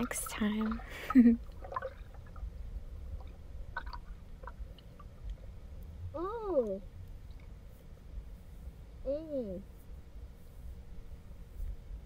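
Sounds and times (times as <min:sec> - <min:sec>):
low rumble of water underwater: 0:00.0 - 0:09.0
voice-like hum: 0:09.0 - 0:09.7.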